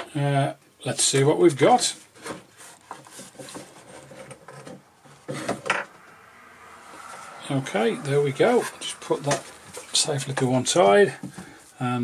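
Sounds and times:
radio panel scraping and knocking: 2.2 - 5.7.

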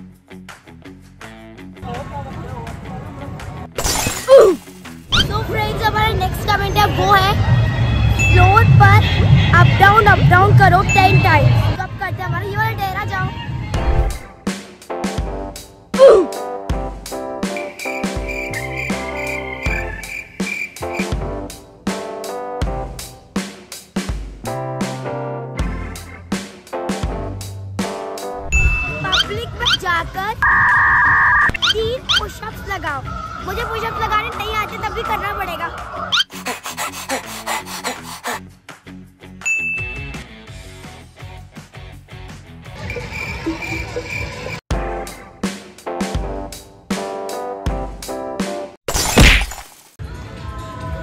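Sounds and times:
background music with a beat: 13.8 - 29.1, 38.5 - 42.8, 44.7 - 48.8.

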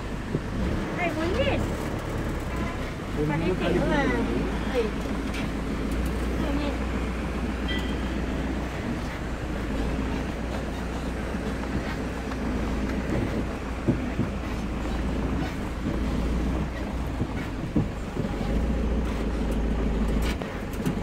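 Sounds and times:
minibus engine and road rumble: 0.0 - 21.0
body knocks and rattles: 7.8 - 21.0.

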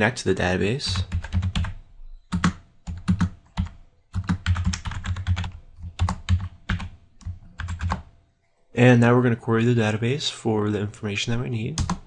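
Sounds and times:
typing on computer keyboard: 0.9 - 8.1, 11.8 - 12.0.

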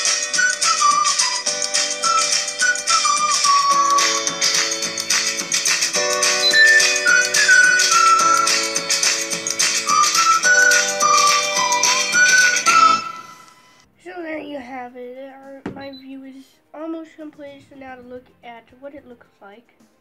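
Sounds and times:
music from small speaker: 0.0 - 13.8.

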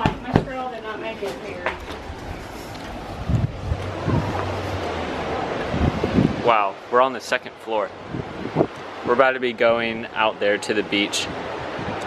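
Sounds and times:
wind buffeting microphone: 0.0 - 6.7, 7.9 - 9.2, 10.8 - 12.0.

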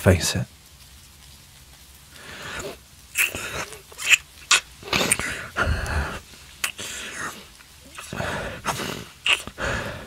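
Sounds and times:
wet kisses: 2.6 - 6.0, 6.6 - 9.6
soft breath: 5.1 - 10.0.

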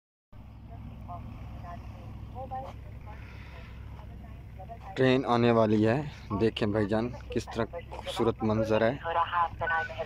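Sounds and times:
steady low rumble: 0.4 - 10.0.

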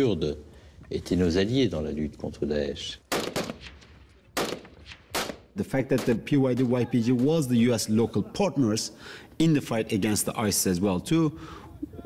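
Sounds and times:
rifle shots: 3.1 - 7.3.

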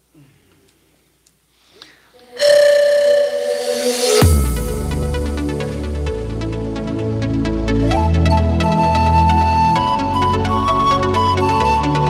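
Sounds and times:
panpipes held note: 2.2 - 5.8.

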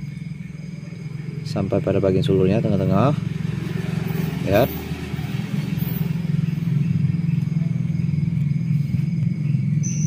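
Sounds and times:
small engine running: 0.3 - 10.0.

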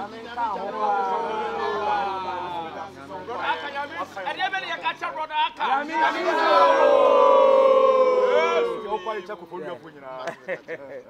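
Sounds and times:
voices in group prayer: 0.0 - 10.4.

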